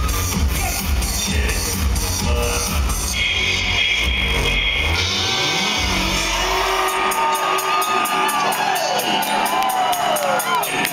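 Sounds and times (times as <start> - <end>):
heavy bass: 0.0 - 10.9
live electronic music: 0.0 - 10.9
high held synth tone: 1.2 - 8.7
low synth tone sweeping upward: 1.3 - 7.9.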